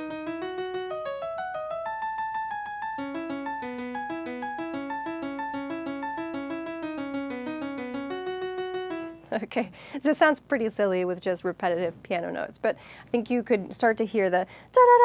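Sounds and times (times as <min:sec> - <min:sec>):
piano playing fast single notes: 0:00.0 - 0:09.3.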